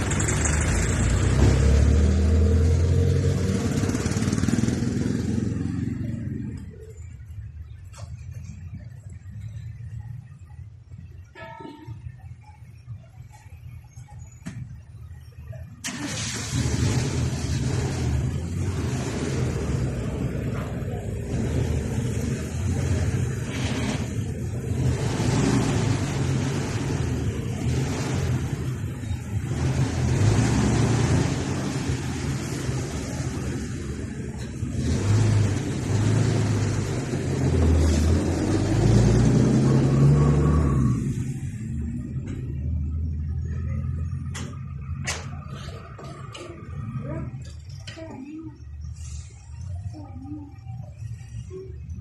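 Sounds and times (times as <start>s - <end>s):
cars driving past: 0.0s - 10.6s, 15.8s - 47.8s
car engines running: 0.0s - 11.3s, 12.0s - 52.0s.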